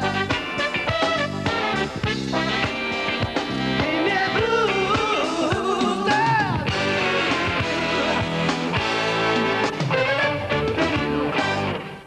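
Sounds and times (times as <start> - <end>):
blues band music: 0.0 - 12.0.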